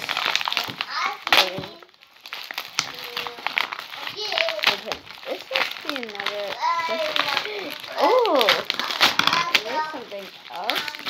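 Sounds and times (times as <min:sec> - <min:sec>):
paper wrapping crinkling and tearing: 0:00.0 - 0:11.0.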